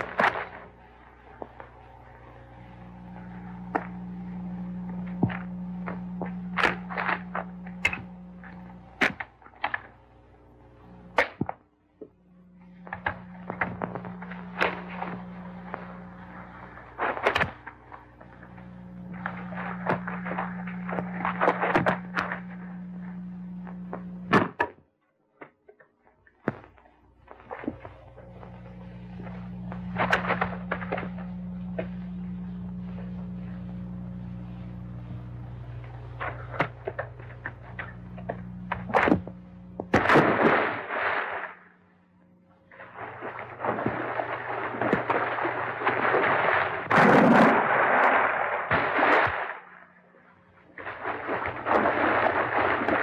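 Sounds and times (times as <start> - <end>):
noise in waves: 0.0 - 11.6, 12.2 - 24.6, 26.5 - 53.0
steady low hum: 0.0 - 53.0
sharp knocks and cracks: 5.2 - 10.0, 11.1 - 12.1, 17.0 - 18.3, 36.6 - 40.6.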